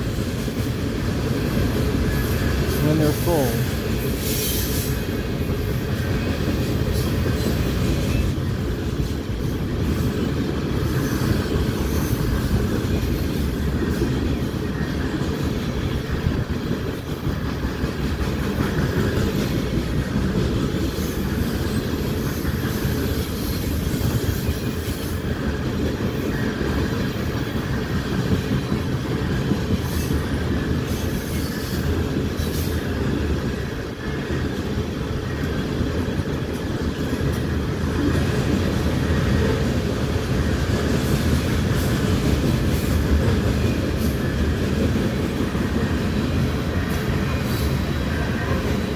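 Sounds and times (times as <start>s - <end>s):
rumble of wheels on rail: 0.0s - 48.9s.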